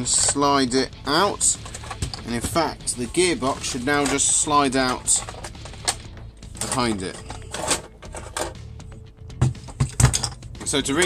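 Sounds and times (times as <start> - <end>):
metal scraping on plastic: 1.5 - 2.6, 3.4 - 8.6.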